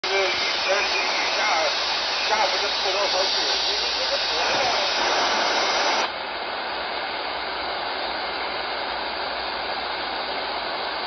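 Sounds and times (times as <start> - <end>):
faint voice over radio: 0.0 - 5.7
radio static hiss: 0.0 - 11.0.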